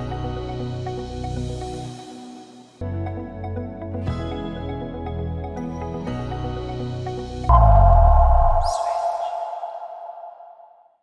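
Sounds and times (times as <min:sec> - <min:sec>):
deep bass hit with ringing tone: 0:07.5 - 0:10.7
high shimmering swoosh: 0:07.5 - 0:10.8.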